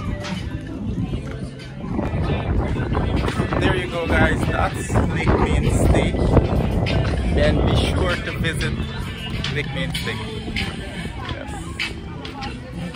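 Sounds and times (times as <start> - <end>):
background music: 0.0 - 12.9
low rumble: 0.8 - 12.8.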